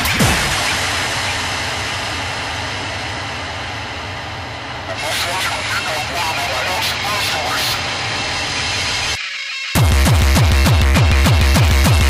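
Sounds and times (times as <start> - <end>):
rumbling electronic noise: 0.0 - 12.0
electronic beat: 5.0 - 12.0.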